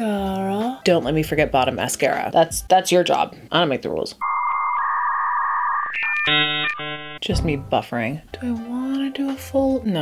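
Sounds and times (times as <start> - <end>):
buzzy electronic tone: 4.2 - 7.2
short high beep: 4.2 - 7.2.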